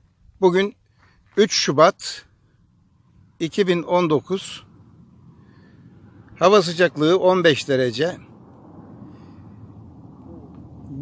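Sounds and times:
low rumbling background noise: 0:02.1 - 0:11.0.

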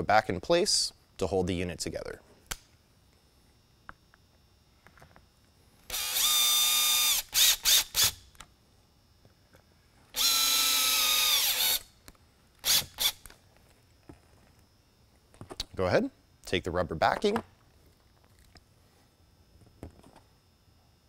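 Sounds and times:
drill motor whine: 0:05.8 - 0:08.4, 0:10.1 - 0:12.0, 0:12.6 - 0:13.3
drill trigger blips: 0:05.9 - 0:08.5, 0:10.1 - 0:12.0, 0:12.6 - 0:13.3.

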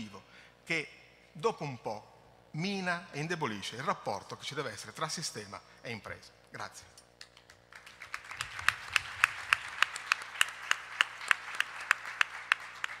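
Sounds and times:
hands clapping sharply: 0:07.2 - 0:13.0
audience applauding: 0:07.4 - 0:13.0.

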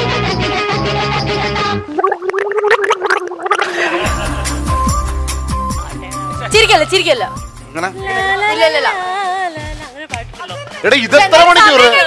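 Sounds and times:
woman gargling: 0:01.9 - 0:03.7
background music: 0:03.7 - 0:12.0.

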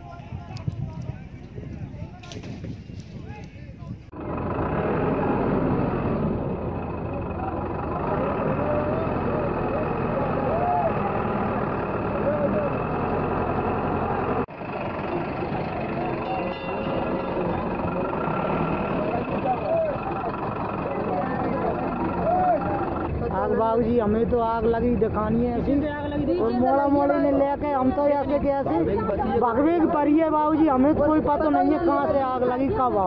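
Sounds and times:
people talking: 0:00.0 - 0:04.0, 0:07.1 - 0:12.8, 0:15.9 - 0:33.0
steady low rumble: 0:00.0 - 0:08.8.

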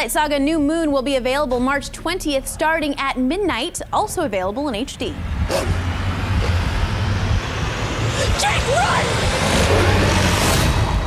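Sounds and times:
low rumble: 0:00.1 - 0:11.0
hissing rush: 0:05.4 - 0:11.0.

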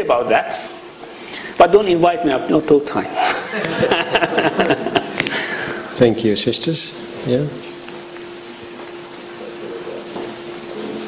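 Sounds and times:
man laughing: 0:03.1 - 0:05.3.

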